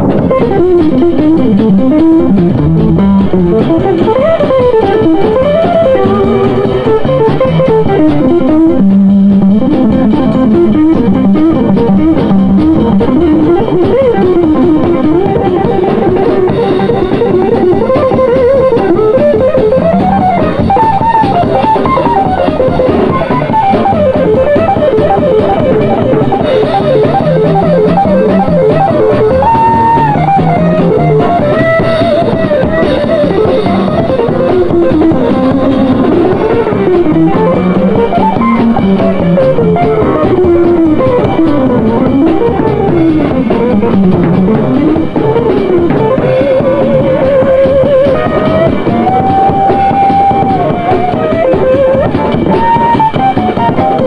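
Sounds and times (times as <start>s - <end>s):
drum kit: 0.0s - 54.0s
electric guitar solo: 0.0s - 54.0s.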